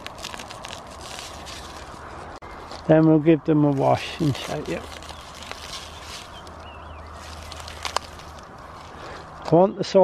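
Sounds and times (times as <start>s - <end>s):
onion leaves rustling: 0.0s - 9.5s
soil crumbling: 0.0s - 9.6s.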